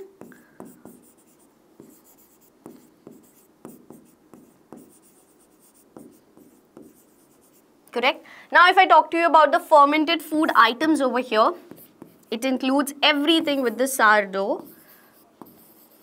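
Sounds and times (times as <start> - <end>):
pen writing on a board: 0.0 - 7.6, 11.7 - 12.3, 14.6 - 16.0.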